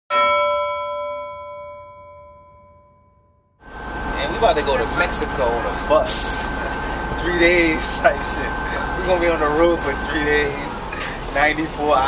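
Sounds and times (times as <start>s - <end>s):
metallic bell-like strike ringing: 0.1s - 3.5s
bus interior rumble and hiss: 3.6s - 12.0s.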